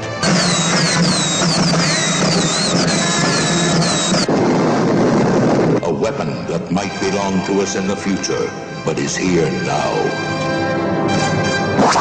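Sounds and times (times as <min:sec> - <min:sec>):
dense noisy rush: 0:00.0 - 0:07.9
swooping electronic whistles: 0:00.2 - 0:04.3, 0:11.8 - 0:12.0.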